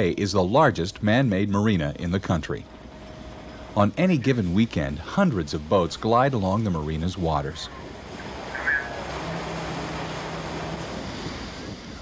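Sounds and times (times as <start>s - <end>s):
wind: 0.0s - 12.0s
motorboat engine hum: 1.4s - 12.0s
rushing water: 2.6s - 12.0s.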